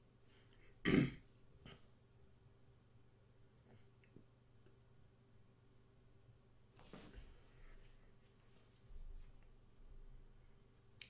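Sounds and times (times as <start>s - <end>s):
man clearing his throat: 0.8s - 1.2s.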